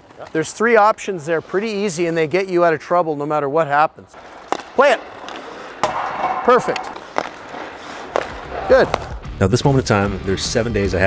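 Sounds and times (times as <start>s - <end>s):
hockey stick knocking puck: 4.2s - 9.3s.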